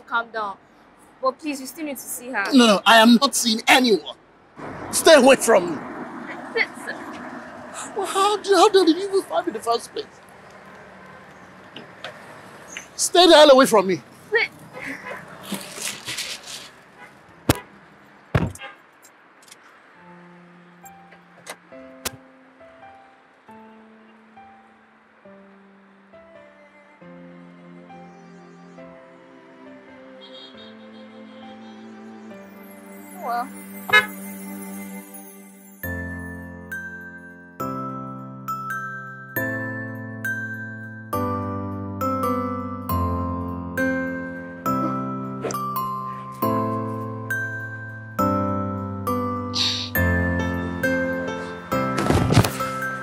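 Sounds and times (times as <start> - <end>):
rustling: 14.2 - 17.1
car door shutting: 18.4 - 18.6
soft background music: 19.8 - 53.0.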